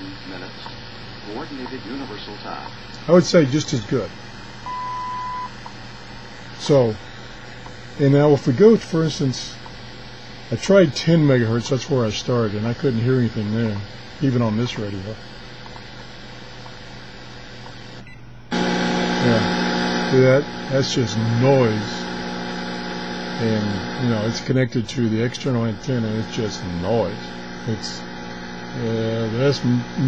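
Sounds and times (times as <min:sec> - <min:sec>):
loud buzzing hum: 0:00.0 - 0:30.0
radio static: 0:00.0 - 0:30.0
radio time signal tone: 0:04.6 - 0:05.6, 0:18.5 - 0:30.0.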